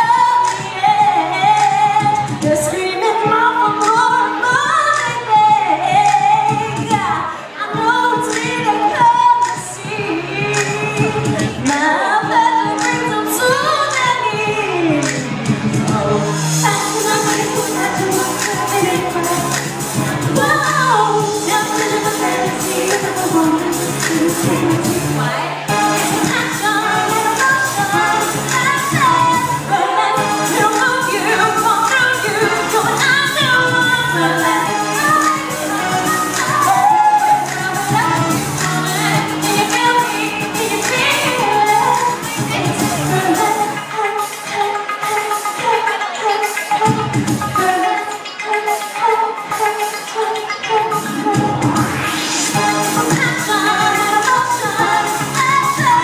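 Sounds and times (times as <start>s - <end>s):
amplified accompaniment: 0.0s - 56.0s
loud pop music: 0.0s - 56.0s
women singing into microphones: 0.0s - 56.0s.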